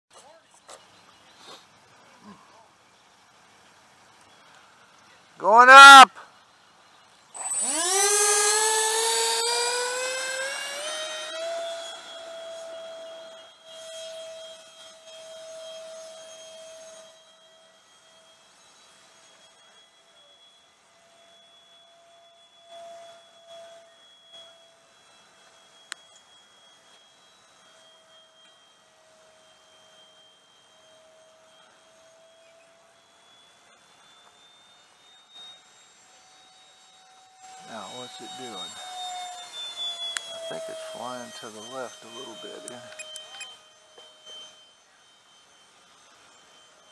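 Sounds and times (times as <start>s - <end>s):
faint distant voices: 0.1s - 3.7s
electric fan motors whining: 0.2s - 46.9s.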